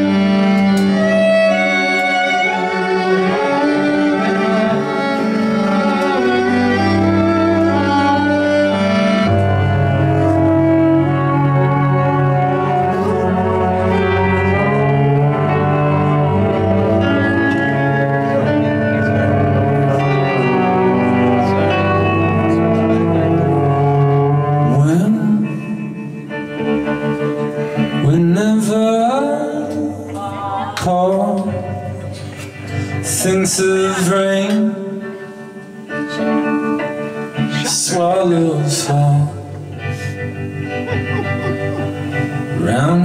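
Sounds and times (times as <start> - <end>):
acoustic guitar chords: 0.0 - 43.0
electric guitar chords: 0.0 - 43.0
person singing: 0.0 - 43.0.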